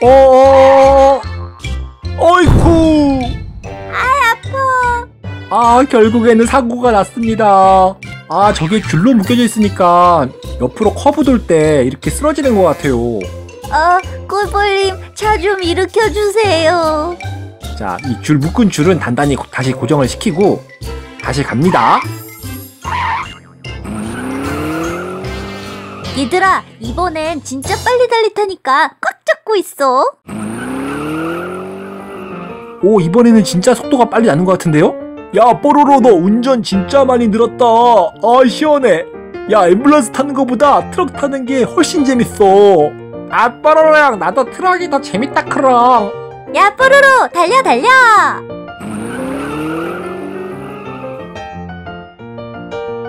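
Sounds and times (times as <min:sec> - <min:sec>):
light background music: 0:00.0 - 0:28.7, 0:31.9 - 0:53.0
car engine revving up: 0:23.8 - 0:26.3, 0:30.3 - 0:32.7, 0:48.8 - 0:51.4
vehicle motor speeding up: 0:23.8 - 0:26.3, 0:30.3 - 0:32.6, 0:48.8 - 0:51.4.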